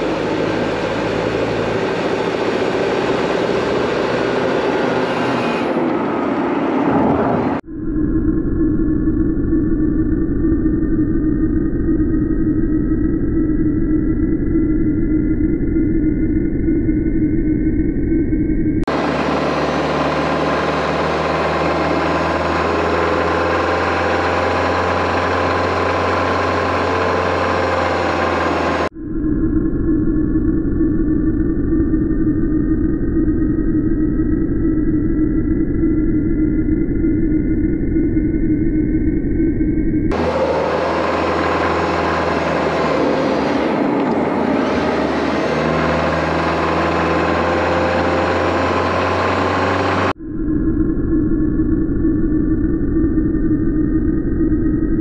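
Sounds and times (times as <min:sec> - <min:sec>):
car engine and road noise: 0:00.0 - 0:07.7, 0:18.1 - 0:28.9, 0:39.4 - 0:50.2
whine rising in pitch: 0:00.0 - 0:55.0.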